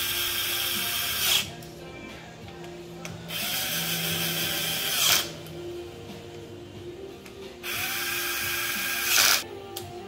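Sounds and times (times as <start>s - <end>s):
electric screwdriver whirring: 0.0s - 1.5s, 3.3s - 5.3s, 7.6s - 9.4s.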